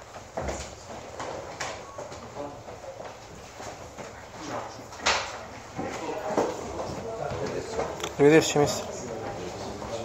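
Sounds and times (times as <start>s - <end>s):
faint voices murmuring: 0.5s - 10.0s.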